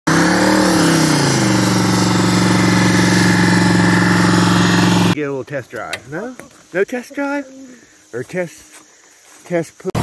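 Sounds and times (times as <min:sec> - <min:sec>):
car engine revving high: 0:00.1 - 0:05.2.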